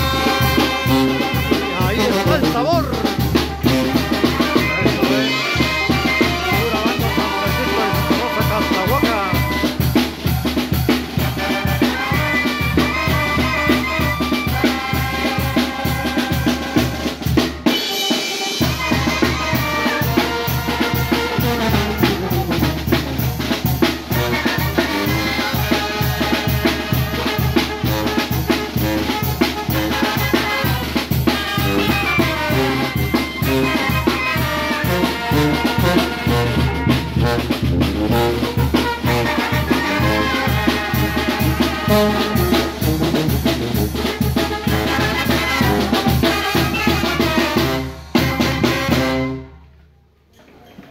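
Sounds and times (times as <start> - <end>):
brass band playing live: 0.0 - 49.8.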